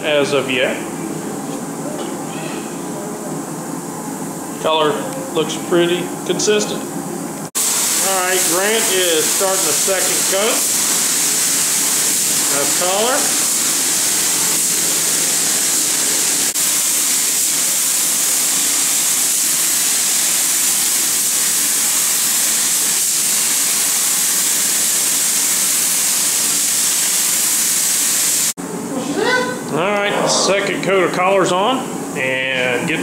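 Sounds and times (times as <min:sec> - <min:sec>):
spray gun hissing: 0:07.6 - 0:28.5.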